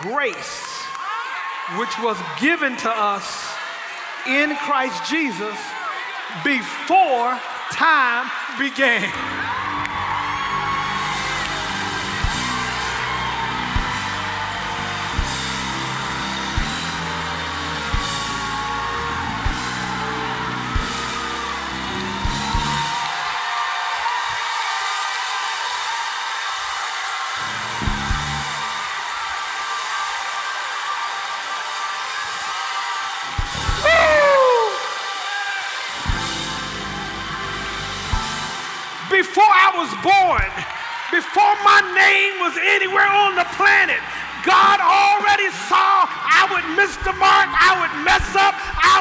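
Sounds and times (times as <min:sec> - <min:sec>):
sustained keyboard chords: 0:09.2 - 0:23.0, 0:27.8 - 0:28.7, 0:36.0 - 0:38.9
drum kit hits: 0:11.1 - 0:23.1, 0:27.8 - 0:28.7, 0:33.4 - 0:34.2, 0:36.0 - 0:38.8
loud falling cry: 0:33.3 - 0:35.7.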